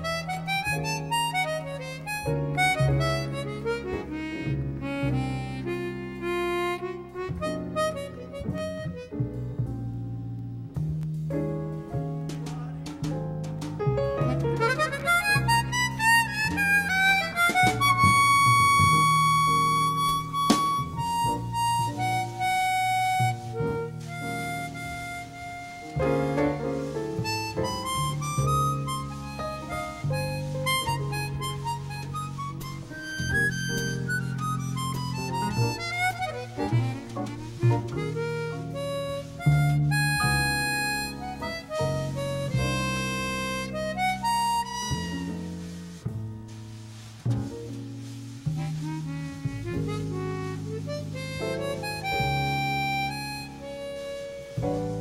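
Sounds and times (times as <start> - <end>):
double bass low notes: 0.0 - 55.0
harmonica jazz ballad melody: 0.0 - 55.0.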